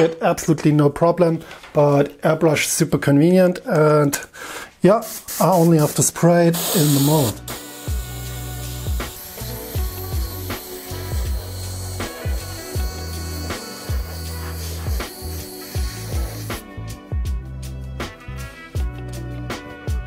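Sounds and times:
airbrush spraying hiss: 0:05.0 - 0:16.6
music with bass-drum beat: 0:06.7 - 0:20.0.

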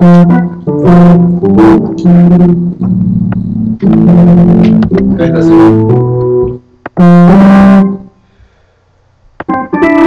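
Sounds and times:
acoustic guitar strumming: 0:00.0 - 0:07.8.

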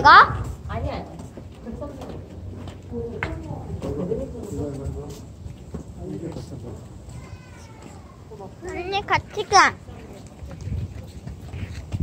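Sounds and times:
wind buffeting microphone: 0:00.0 - 0:02.1, 0:08.8 - 0:12.0
faint voices: 0:01.8 - 0:12.0.

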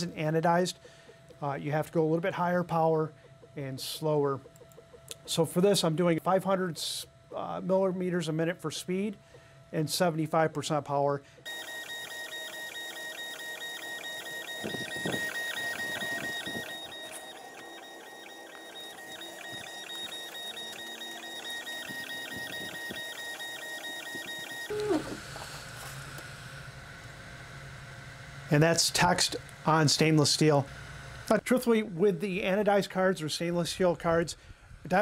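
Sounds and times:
low steady hum: 0:00.0 - 0:35.0
laser engraver motor whine: 0:11.5 - 0:31.4.

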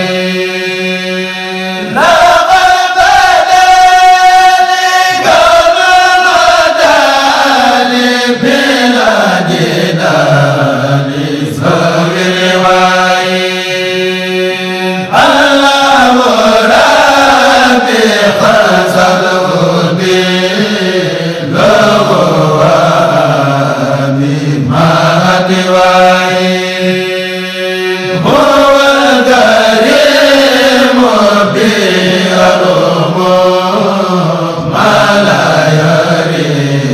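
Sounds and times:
solo voice chanting: 0:00.0 - 0:36.9.

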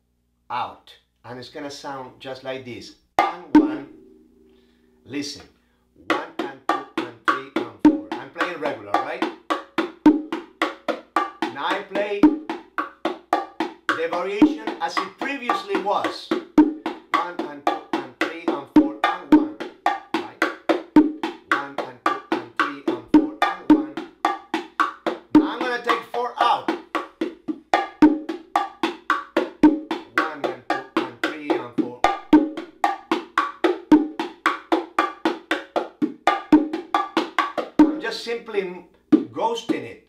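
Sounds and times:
bongo drums played by hand: 0:03.2 - 0:04.2, 0:06.0 - 0:38.3, 0:39.1 - 0:39.9.

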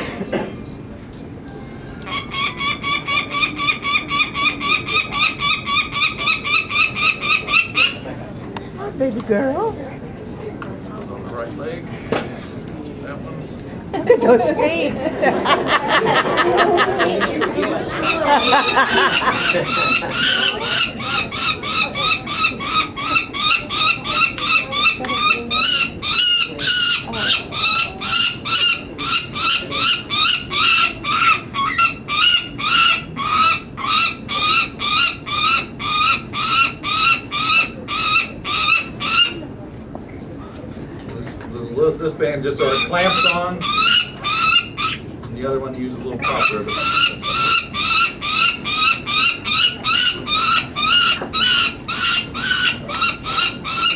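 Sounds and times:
falcon chick harsh cries: 0:18.0 - 0:39.4, 0:42.6 - 0:45.0, 0:46.2 - 0:53.9.

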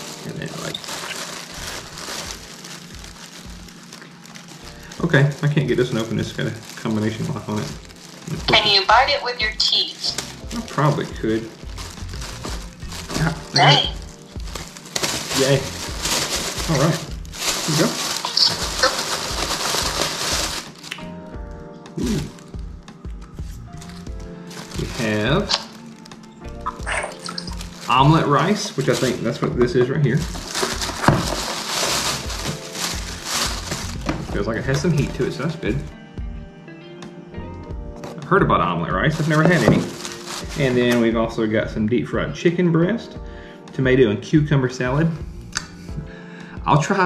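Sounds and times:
plastic bag crinkling: 0:00.0 - 0:21.2, 0:23.7 - 0:35.9, 0:39.0 - 0:41.1
background music with held notes: 0:00.0 - 0:47.0.

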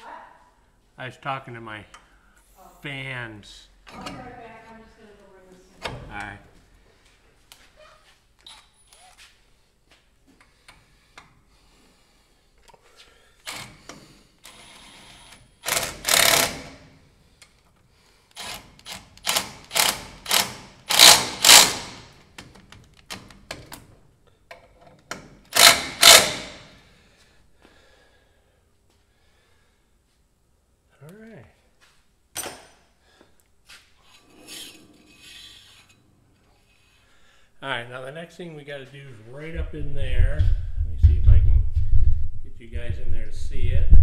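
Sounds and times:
cordless power driver bursts: 0:15.6 - 0:16.9, 0:18.3 - 0:22.2, 0:25.5 - 0:26.8.

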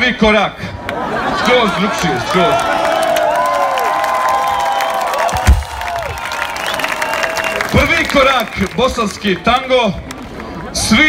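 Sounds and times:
concert crowd cheering: 0:00.8 - 0:11.0.

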